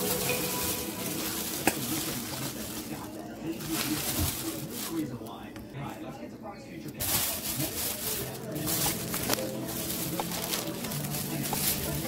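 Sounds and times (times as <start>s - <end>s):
plastic bags crinkling: 0.0s - 5.8s, 6.8s - 12.0s.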